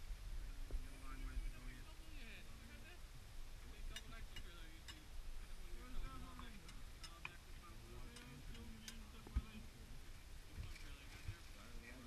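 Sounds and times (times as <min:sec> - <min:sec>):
distant people talking: 0:00.3 - 0:12.0.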